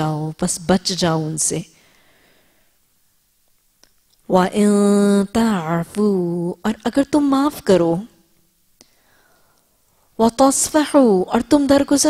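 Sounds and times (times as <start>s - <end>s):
woman speaking: 0.0s - 1.8s, 4.3s - 8.2s, 10.2s - 12.0s.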